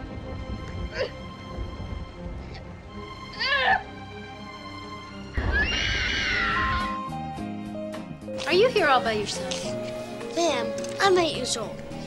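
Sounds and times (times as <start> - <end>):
film soundtrack music: 0.0 - 12.0
high wavering cat-like cries: 3.4 - 3.9, 5.5 - 7.1.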